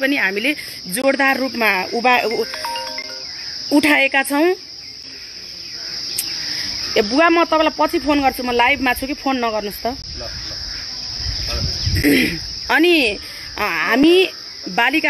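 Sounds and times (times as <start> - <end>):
woman talking: 0.0 - 2.8, 3.7 - 4.6, 7.0 - 10.0, 12.7 - 15.0
crickets chirring: 0.0 - 15.0.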